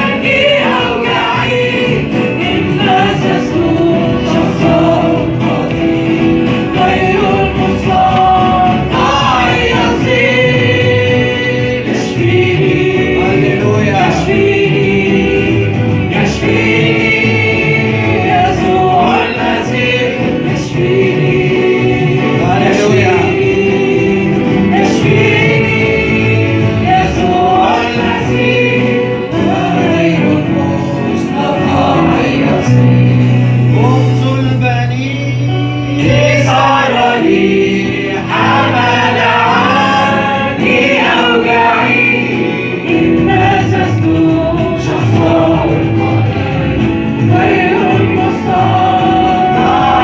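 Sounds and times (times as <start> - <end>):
congregation singing along: 0.0 - 50.0
musical accompaniment: 0.0 - 50.0.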